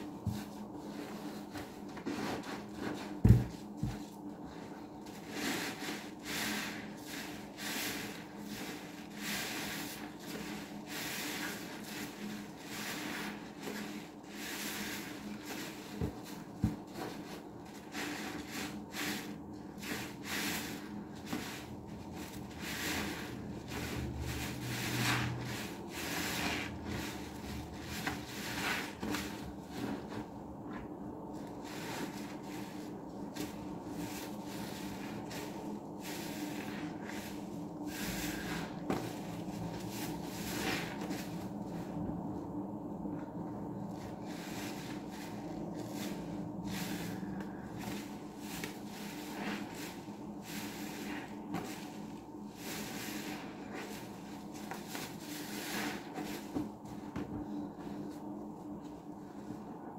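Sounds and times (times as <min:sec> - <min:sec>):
wet sponge squelches: 0:00.2 - 0:42.1, 0:43.2 - 0:58.2.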